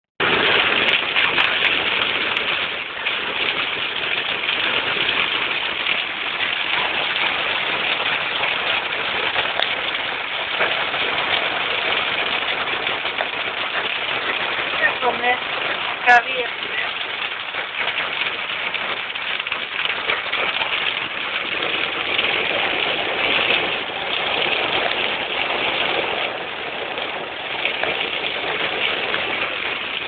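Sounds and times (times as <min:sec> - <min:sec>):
hail hitting car roof: 0:00.2 - 0:30.0.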